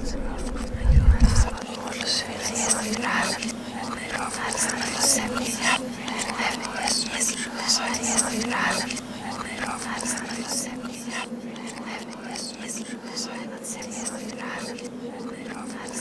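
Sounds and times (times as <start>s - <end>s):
person whispering: 0.0s - 16.0s
steady low hum: 0.0s - 16.0s.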